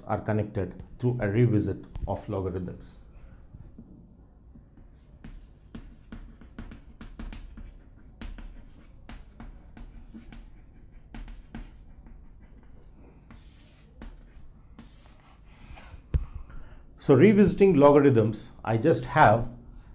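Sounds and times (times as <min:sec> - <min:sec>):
chalk scratching on chalkboard: 0:04.7 - 0:16.1.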